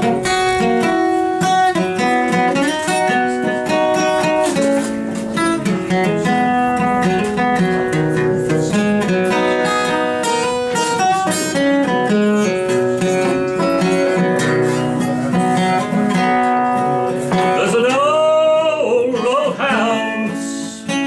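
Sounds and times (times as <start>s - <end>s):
acoustic guitar playing: 0.0s - 21.0s
man singing: 16.8s - 21.0s.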